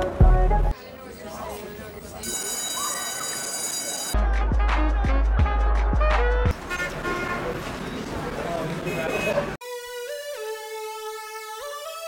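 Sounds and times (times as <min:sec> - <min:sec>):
pop song with heavy bass beat: 0:00.0 - 0:00.7, 0:04.2 - 0:06.5
vehicle and road noise: 0:06.5 - 0:09.6.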